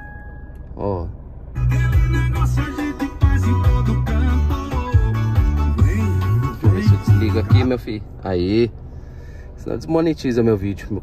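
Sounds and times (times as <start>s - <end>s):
radio music with heavy bass: 1.6s - 7.8s.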